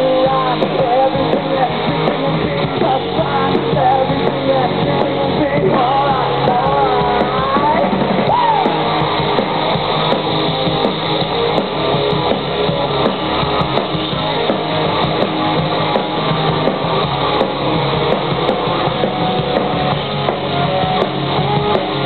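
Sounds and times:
drum kit: 0.0 - 22.0
electric guitars: 0.0 - 22.0.

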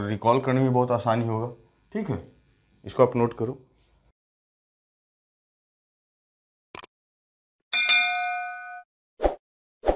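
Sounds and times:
bright bell ding: 7.7 - 8.9.

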